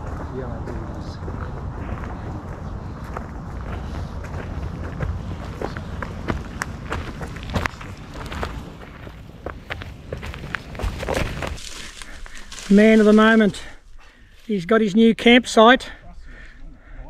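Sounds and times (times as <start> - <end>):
footsteps on dirt track: 0.0 - 13.8.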